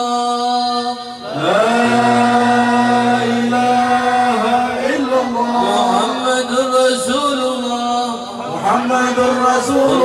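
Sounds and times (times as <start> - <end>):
men chanting into microphones: 0.0 - 10.0.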